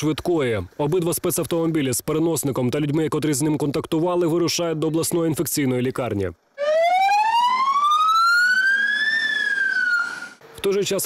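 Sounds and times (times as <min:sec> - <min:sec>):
ambulance siren wailing: 0:06.6 - 0:10.4.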